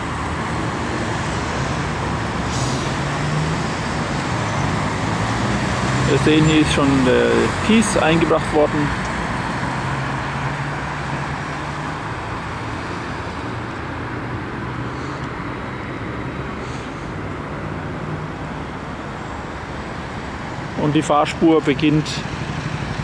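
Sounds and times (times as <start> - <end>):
passing cars traffic noise: 0.0 - 23.0.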